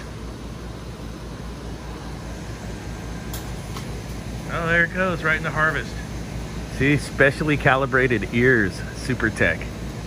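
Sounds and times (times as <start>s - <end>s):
ice machine humming: 0.0s - 10.0s.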